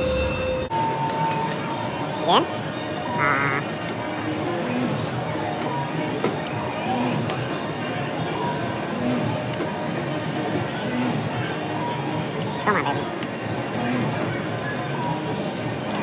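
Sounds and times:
slot machine chiming tones: 0.0s - 1.5s.

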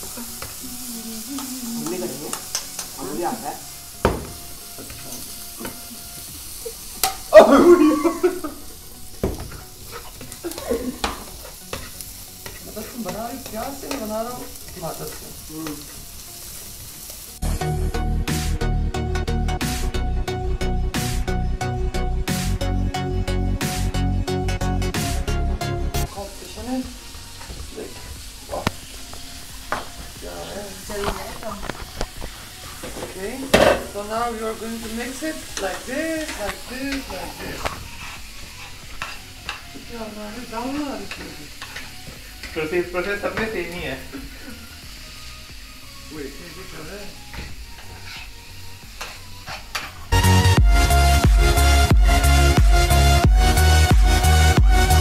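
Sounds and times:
spatula stirring in frying pan: 0.0s - 17.4s, 26.8s - 45.1s, 46.5s - 50.2s
faint steady sizzle: 0.0s - 23.0s, 24.6s - 55.0s
utensil clicking against pan: 1.4s - 3.0s
utensil knocking on pan: 4.0s - 4.4s, 32.8s - 33.9s.

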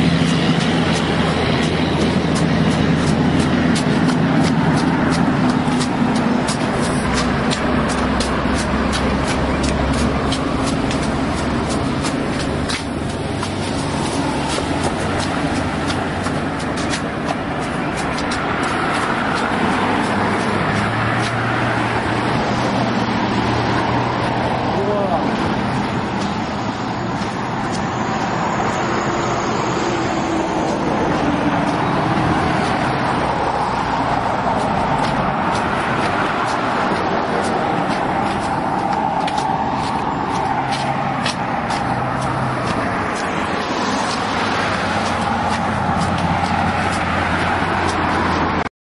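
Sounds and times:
road traffic: 0.0s - 48.7s.

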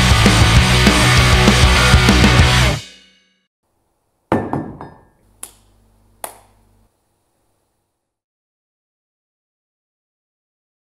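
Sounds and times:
quick knocks: 4.3s - 5.6s.

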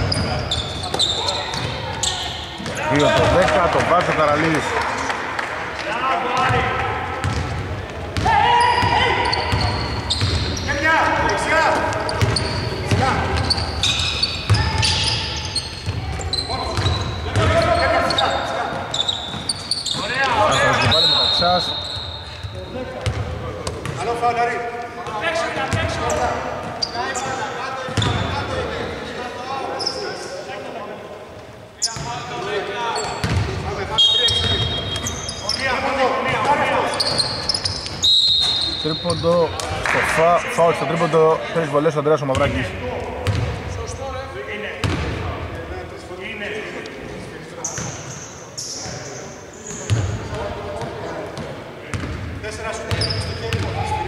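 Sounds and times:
players calling out: 0.0s - 24.2s, 31.8s - 44.1s
basketball bouncing on hardwood: 7.2s - 7.6s.

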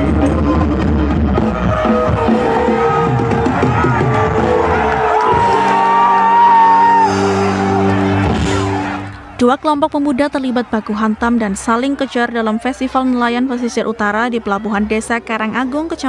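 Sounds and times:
band music over loudspeakers: 0.0s - 10.8s
crowd shouting: 0.0s - 15.9s.

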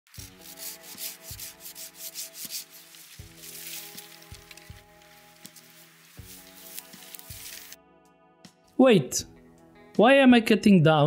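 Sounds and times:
background music sustained notes: 0.1s - 11.0s
hand saw cutting wood: 0.2s - 3.0s.

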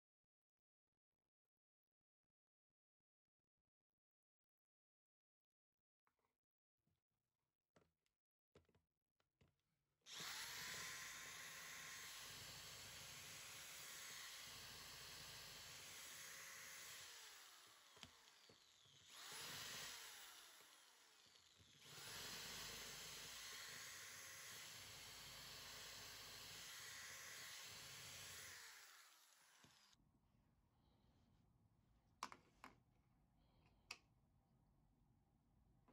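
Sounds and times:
electric drill running: 10.1s - 30.0s.

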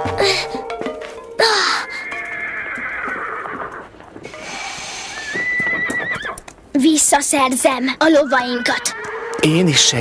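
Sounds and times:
background music: 0.0s - 2.7s
horses whinnying: 1.4s - 6.5s, 8.0s - 9.8s.

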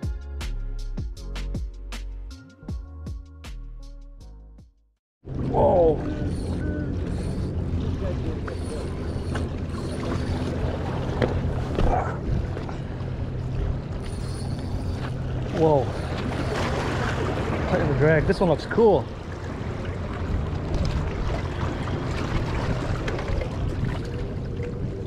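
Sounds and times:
water noise: 5.2s - 25.0s
wind: 5.2s - 25.0s
low engine hum: 5.3s - 25.0s.

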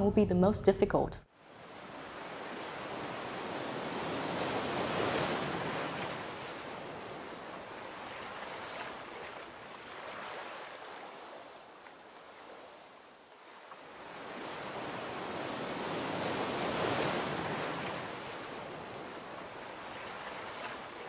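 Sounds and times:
ocean waves washing onto beach: 1.4s - 21.0s.

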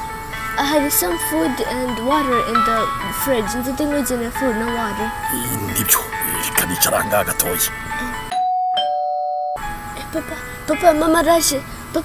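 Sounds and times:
ding-dong doorbell chime: 8.3s - 9.7s.

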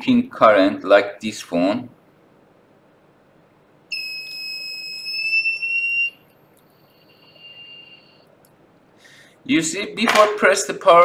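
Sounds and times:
electronic buzzer tone: 3.9s - 6.2s, 6.8s - 8.3s.

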